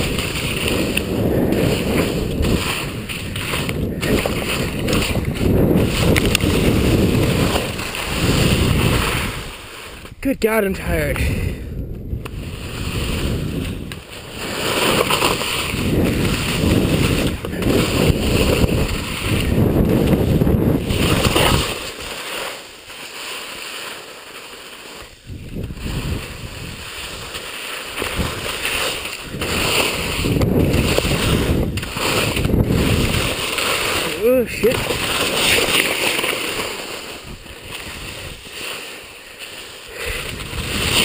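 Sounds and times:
skis scraping over snow: 0.0 - 11.6, 12.2 - 41.0
wind buffeting microphone: 0.0 - 21.8, 25.2 - 27.4, 28.0 - 35.7, 40.0 - 41.0
person breathing hard: 37.8 - 40.6.

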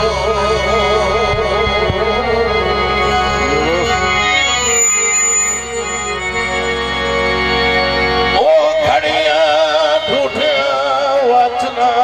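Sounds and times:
man singing a long note: 0.0 - 5.2, 8.3 - 12.0
harmonium: 0.0 - 12.0.

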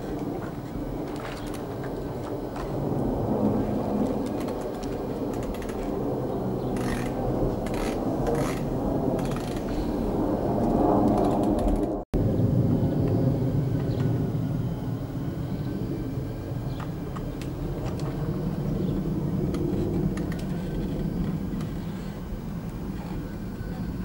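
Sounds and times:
low street rumble: 0.0 - 24.0.

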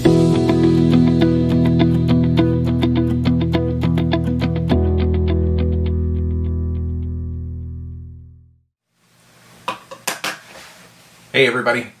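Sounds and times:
faint room noise: 8.8 - 12.0.

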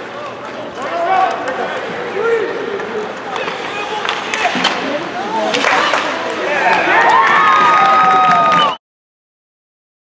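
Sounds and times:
hockey sticks and puck clacking: 0.2 - 8.7
spectators and players shouting: 5.2 - 8.8.

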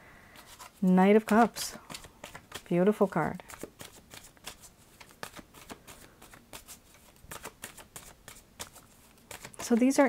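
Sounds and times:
cards being shuffled: 0.4 - 10.0.

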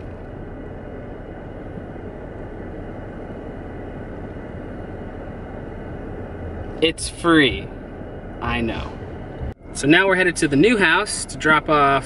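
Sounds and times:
car engine and cabin rumble: 0.0 - 12.0.

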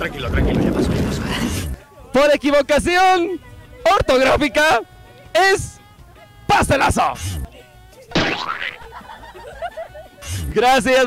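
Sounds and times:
cartoon boing sound effect: 8.1 - 8.9.

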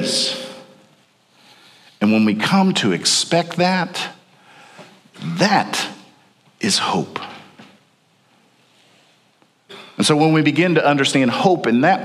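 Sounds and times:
man talking: 0.0 - 0.8, 2.0 - 4.2, 5.2 - 7.5, 10.0 - 12.0
throat clearing: 9.7 - 10.0.

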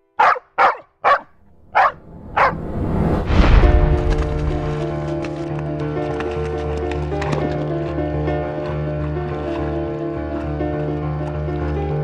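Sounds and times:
dog barking sharply: 0.2 - 2.6.

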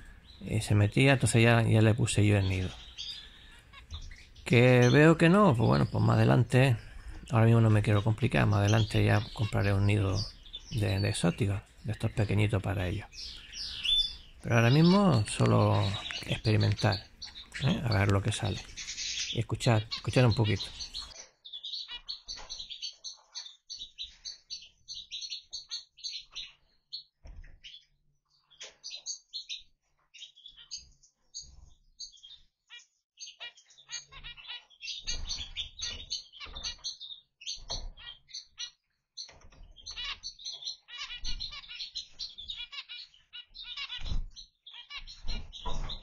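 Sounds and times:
finches beeping: 0.0 - 21.1.

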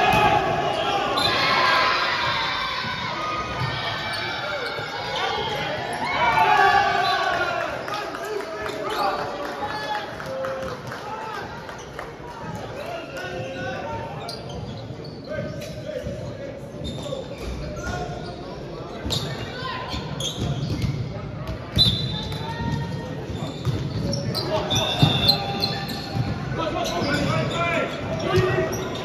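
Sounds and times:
players calling and chatting: 12.5 - 29.0
volleyball bouncing on court: 20.4 - 25.4.

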